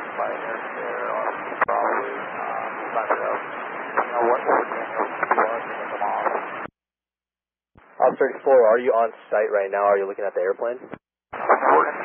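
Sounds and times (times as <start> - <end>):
radio hiss: 0.0 - 6.7, 7.8 - 9.5, 10.1 - 12.0
garbled voice over radio: 0.2 - 3.4, 4.0 - 6.5.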